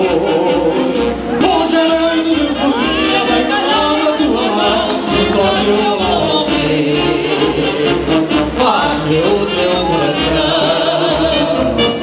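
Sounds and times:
chorus singing over a band: 0.0 - 12.0.

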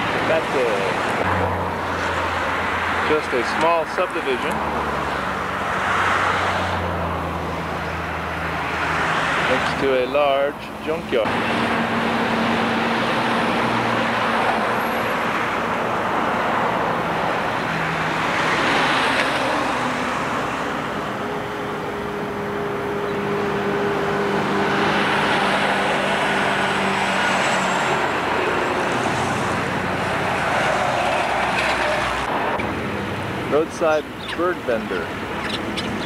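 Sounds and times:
vehicles passing on road: 0.0 - 36.0.

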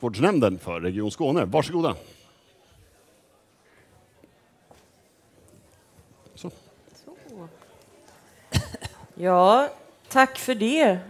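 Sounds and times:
person coughing: 8.5 - 9.1.

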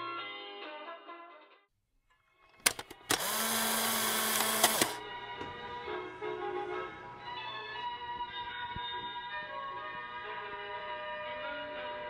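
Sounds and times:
clicks: 2.5 - 5.0
small electric motor buzzing: 2.7 - 5.0.

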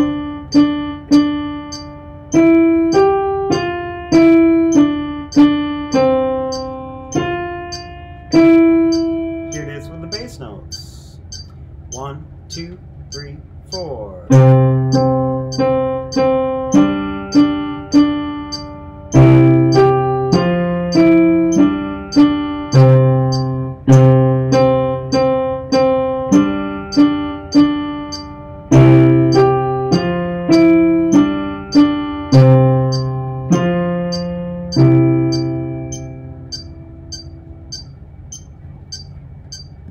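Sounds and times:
metronome clicking: 0.0 - 39.9
piano chords on keyboard: 0.0 - 39.9.

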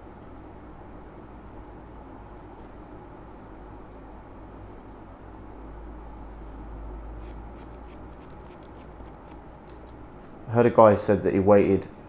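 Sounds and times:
scissors snipping hair: 7.2 - 10.0.

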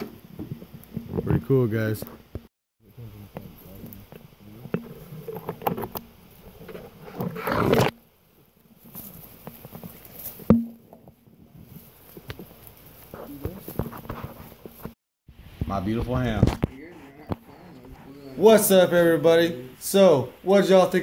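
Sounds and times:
branches scraping microphone: 0.0 - 19.5
brush and twigs rustling: 0.0 - 19.5.

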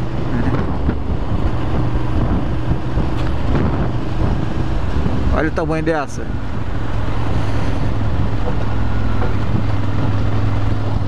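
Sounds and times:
wind on microphone: 0.0 - 5.6.

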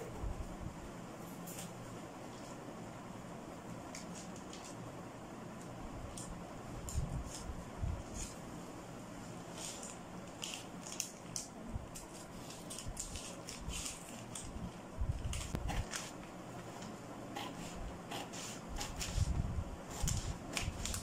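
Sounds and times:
room hum: 0.0 - 21.0
scissors snipping paper: 9.5 - 14.6, 15.2 - 16.2, 16.8 - 19.3, 19.9 - 21.0
paper rustling: 9.5 - 19.3, 19.9 - 21.0.

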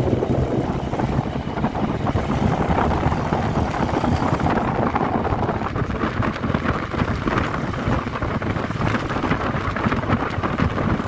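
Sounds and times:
vehicle road and engine noise: 0.0 - 11.0
wind buffeting microphone: 0.0 - 11.0.

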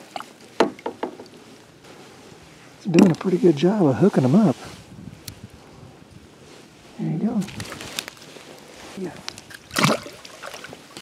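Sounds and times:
short water splash: 9.7 - 10.9.

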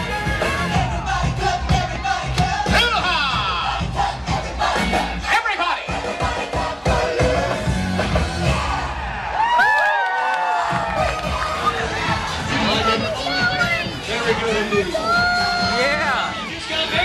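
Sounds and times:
upbeat parade music: 0.0 - 9.0, 10.6 - 17.0
crowd noise: 0.0 - 17.0.

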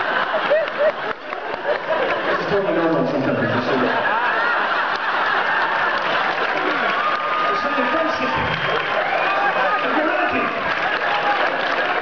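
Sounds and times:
audience applauding: 0.0 - 12.0.

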